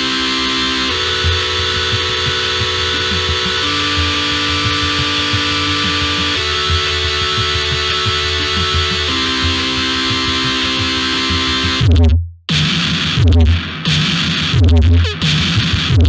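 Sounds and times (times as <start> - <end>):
electronic dance music: 0.0 - 12.1.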